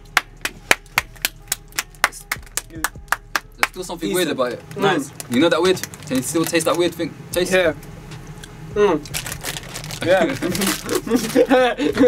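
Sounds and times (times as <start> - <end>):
person clapping hands: 0.1 - 3.8.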